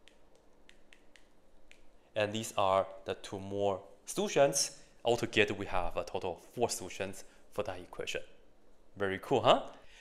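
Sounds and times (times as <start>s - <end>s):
marker ticking on a whiteboard: 0.0s - 2.0s.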